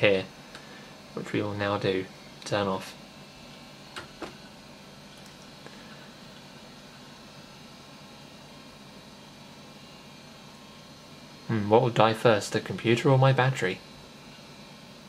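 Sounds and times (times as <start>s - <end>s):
faint hiss and hum: 0.0s - 15.0s.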